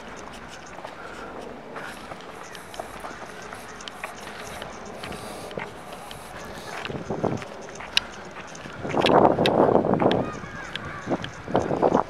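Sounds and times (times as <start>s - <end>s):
faint voices: 0.0s - 12.0s
footsteps on concrete: 0.0s - 12.0s
outdoor hubbub: 0.0s - 12.0s.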